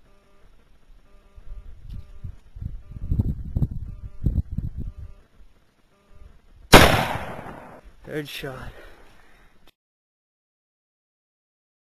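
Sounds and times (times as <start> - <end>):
rifle shot: 6.7 - 7.8.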